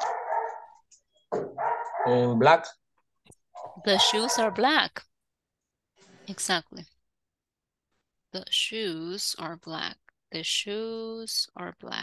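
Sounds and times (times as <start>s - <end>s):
dog barking: 0.0s - 0.8s, 1.4s - 2.4s, 3.6s - 4.6s.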